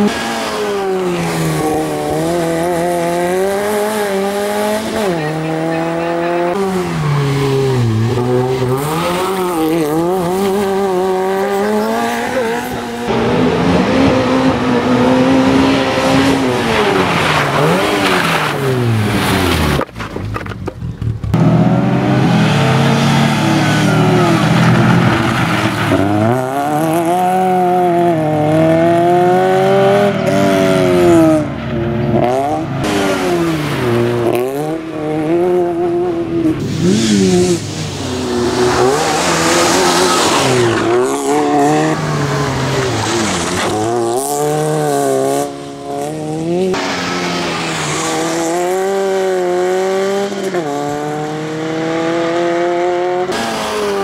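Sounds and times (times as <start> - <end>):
rally car engine revving: 0.0 - 54.0.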